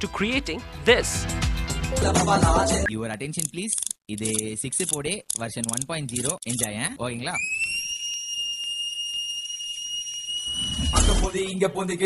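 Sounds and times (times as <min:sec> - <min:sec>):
long high whistle: 0:07.4 - 0:11.3.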